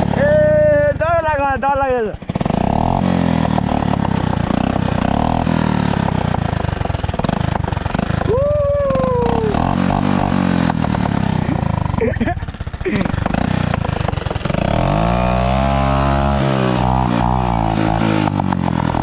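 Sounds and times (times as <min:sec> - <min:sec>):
motorcycle engine revving: 0:00.0 - 0:19.0
person calling out: 0:00.2 - 0:02.0, 0:08.3 - 0:09.8.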